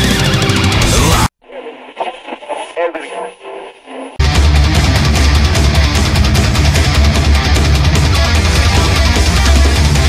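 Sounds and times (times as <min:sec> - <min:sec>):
tinny radio voice: 0:00.9 - 0:04.2.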